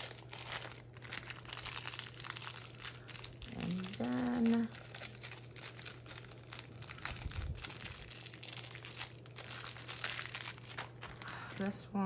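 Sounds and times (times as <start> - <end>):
plastic packets crinkling: 0.0 - 12.0.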